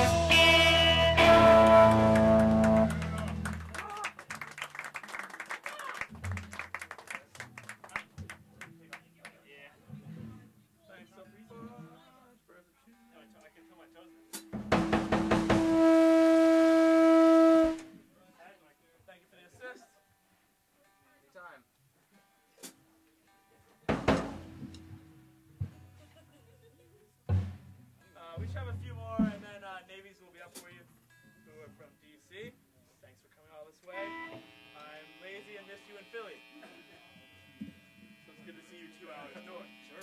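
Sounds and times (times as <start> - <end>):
distorted electric guitar note: 0.0 - 3.5, 33.9 - 40.0
amplifier electrical buzz and hum: 34.0 - 40.0.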